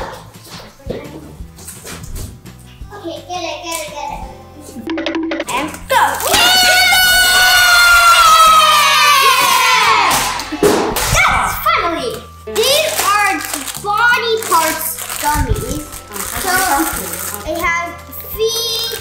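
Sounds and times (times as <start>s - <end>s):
background music: 0.0s - 19.0s
children exclaiming: 5.9s - 10.4s, 11.1s - 14.9s
plastic bag crinkling: 12.6s - 17.7s.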